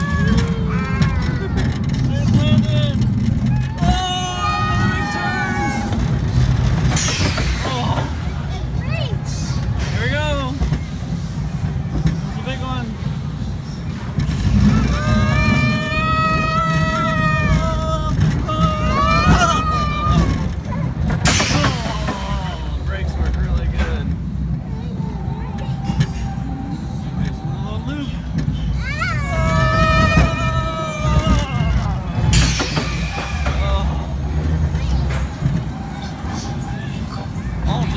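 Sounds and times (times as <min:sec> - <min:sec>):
riders whooping: 0:00.0 - 0:08.1, 0:14.3 - 0:22.7, 0:28.7 - 0:37.9
roller coaster rumbling on track: 0:00.0 - 0:37.9.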